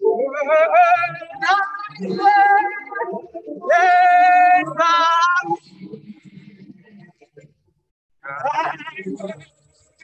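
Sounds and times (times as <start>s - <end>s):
woman singing with vibrato: 0.0s - 5.6s.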